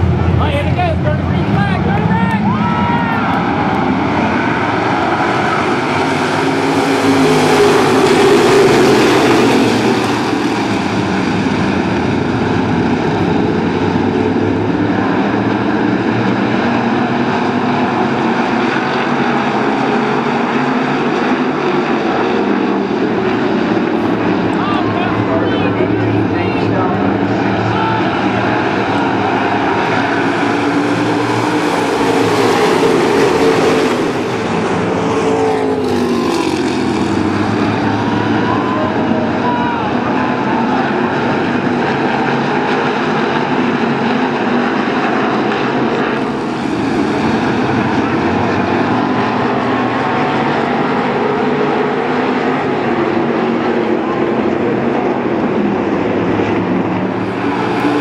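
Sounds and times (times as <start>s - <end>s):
race car engines running hard: 0.0s - 58.0s.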